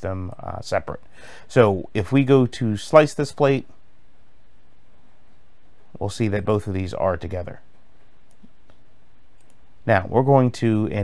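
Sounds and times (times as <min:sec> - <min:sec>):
person speaking: 0:00.0 - 0:03.8, 0:05.9 - 0:08.6, 0:09.4 - 0:11.0
low background hiss: 0:00.0 - 0:11.0
computer mouse clicks: 0:08.2 - 0:09.7.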